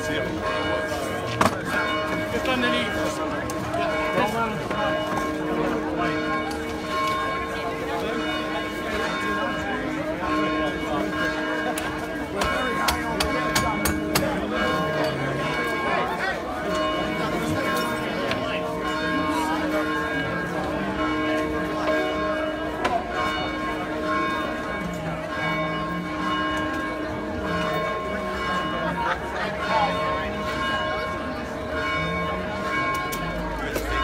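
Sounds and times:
crowd chatter: 0.0s - 34.0s.

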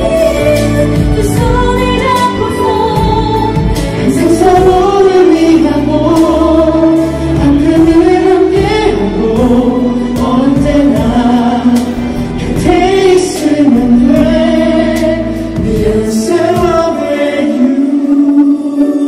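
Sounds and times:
instrumental accompaniment: 0.0s - 19.0s
singers performing into microphones: 0.0s - 19.0s.

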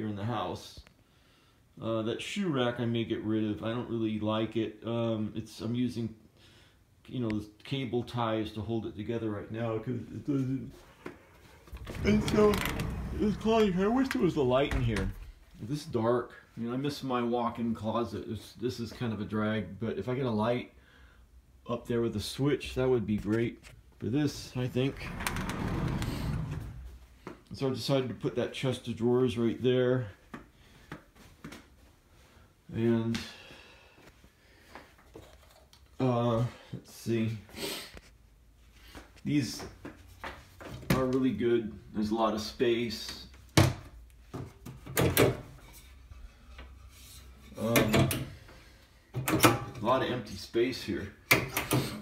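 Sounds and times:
sliding door rolling on track: 11.8s - 14.0s, 24.8s - 26.9s.

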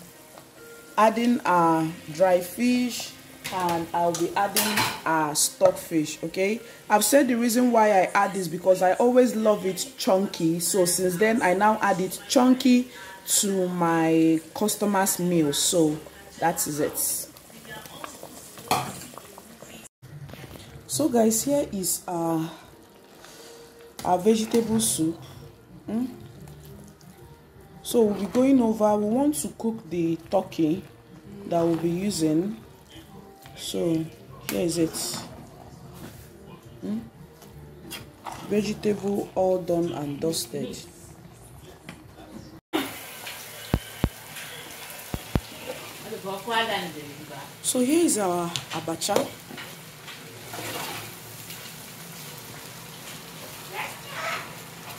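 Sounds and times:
oil sizzling in a pan: 0.0s - 19.9s, 42.8s - 54.9s
pot simmering bubbling: 13.6s - 21.6s, 22.3s - 34.3s, 42.8s - 47.6s.

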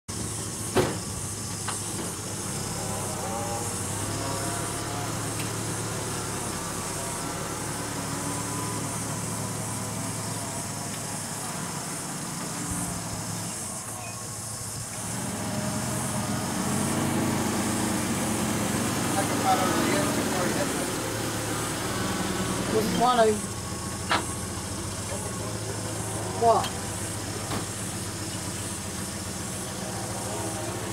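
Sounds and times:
truck engine running: 0.1s - 30.9s.

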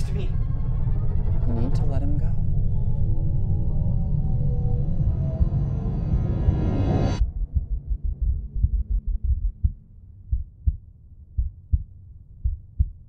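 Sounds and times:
music: 0.0s - 9.8s
faint low drone: 0.0s - 13.0s
heartbeat thumps: 5.1s - 6.0s, 7.1s - 13.0s.

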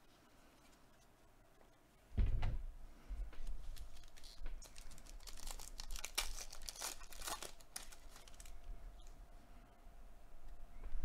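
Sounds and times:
trading cards rustling and crinkling: 3.4s - 9.2s.

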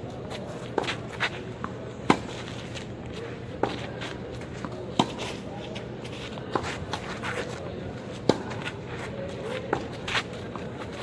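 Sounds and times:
tennis ball bouncing: 0.7s - 2.6s, 3.6s - 5.4s, 8.2s - 8.8s
racket hitting tennis ball: 0.7s - 2.8s, 4.6s - 5.5s, 6.5s - 8.8s.

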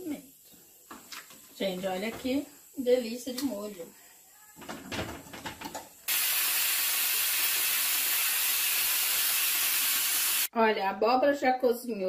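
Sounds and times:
pressure cooker hissing steam: 0.0s - 10.5s.

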